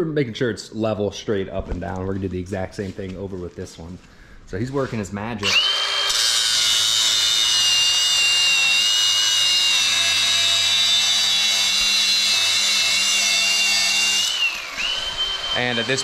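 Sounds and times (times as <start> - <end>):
angle grinder cutting metal: 5.4 - 16.0.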